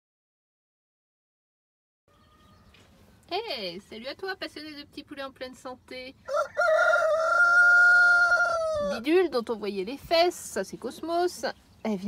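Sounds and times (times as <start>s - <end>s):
rooster crowing: 2.1s - 2.8s, 6.3s - 9.0s.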